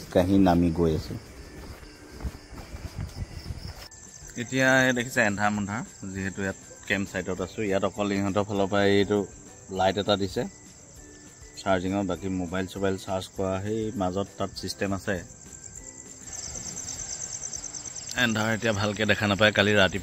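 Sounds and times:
night insects chirring: 0:00.0 - 0:20.0
rapid high insect trill: 0:00.0 - 0:20.0.

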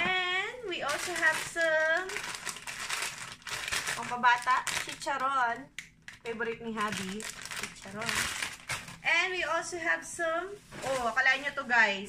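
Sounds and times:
plastic bags crinkling: 0:00.7 - 0:09.8, 0:10.6 - 0:12.0.

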